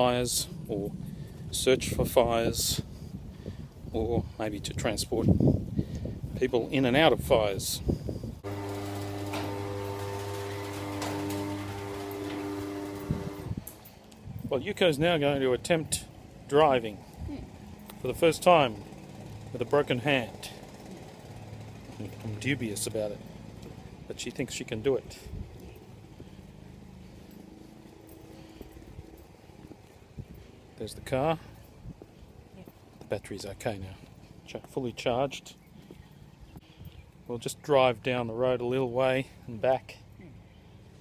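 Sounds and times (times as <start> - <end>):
electrical hum: 8.3 - 33.3
footsteps on lawn: 25.4 - 30.8.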